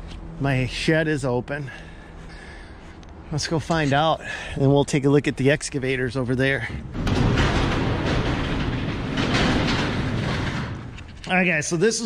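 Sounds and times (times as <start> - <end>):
metal shed door rattling: 5.8 - 11.6.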